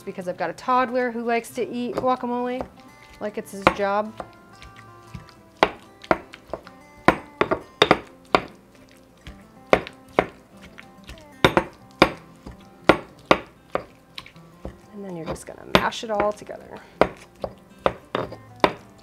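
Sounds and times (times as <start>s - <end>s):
stone pestle knocking in mortar: 3.6s - 8.6s, 9.3s - 10.4s, 11.4s - 14.0s, 14.6s - 16.4s, 17.0s - 18.9s.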